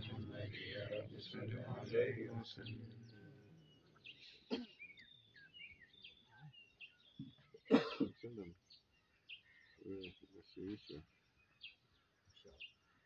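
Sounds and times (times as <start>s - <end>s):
small birds chirping: 0.0s - 13.0s
man's voice or cough: 7.7s - 8.4s.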